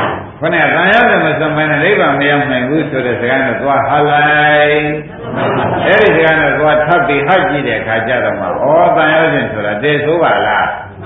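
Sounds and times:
man chanting a sermon: 0.4 - 5.1, 5.8 - 11.0.

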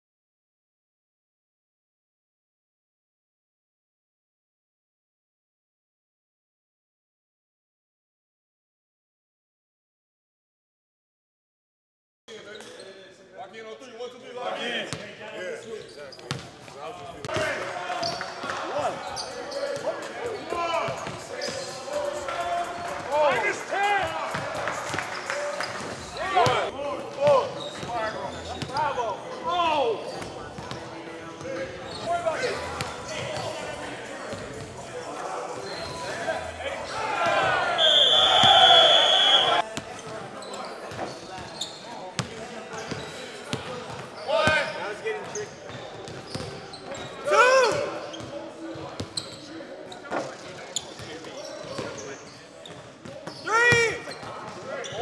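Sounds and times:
players' voices echoing: 12.3 - 55.0
sneaker squeaks: 12.4 - 13.0, 15.6 - 21.9, 24.9 - 29.0, 30.0 - 30.9, 31.5 - 33.6, 35.5 - 36.2, 37.8 - 55.0.

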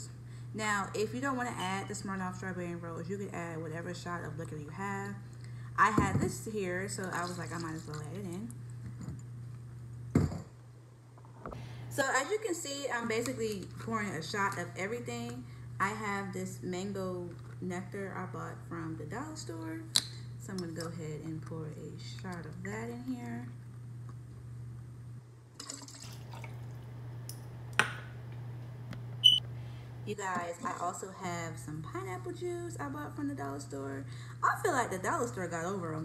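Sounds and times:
low steady hum: 0.0 - 36.0
liquid pouring and splashing: 25.6 - 26.9.

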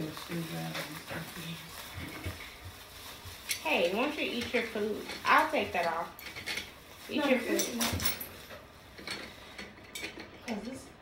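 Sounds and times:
plastic wrapping rustling: 0.0 - 9.8.

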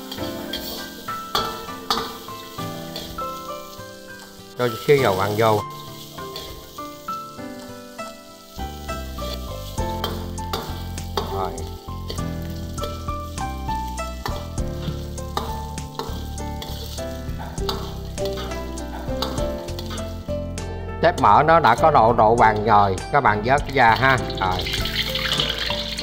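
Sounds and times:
metal ladle scraping a wok: 0.0 - 20.3, 23.6 - 26.0
pork fat sizzling in a wok: 0.0 - 26.0.

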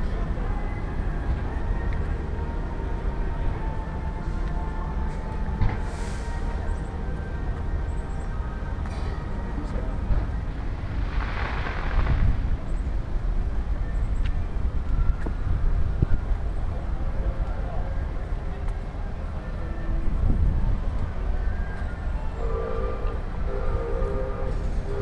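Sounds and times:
traffic rumble: 0.0 - 25.0.

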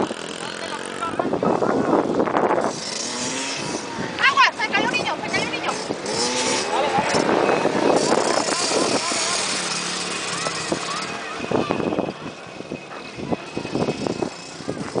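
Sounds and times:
dirt bike engines revving: 0.0 - 15.0.

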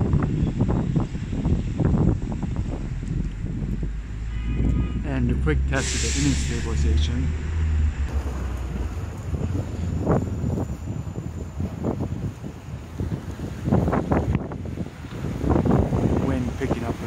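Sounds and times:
wind buffeting microphone: 0.0 - 17.0
bumps and crackles: 0.6 - 10.5.

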